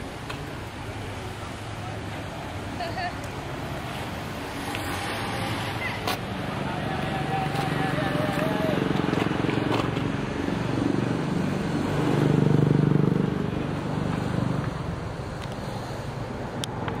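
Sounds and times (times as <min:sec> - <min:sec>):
vehicle engine passing: 0:03.6 - 0:17.0.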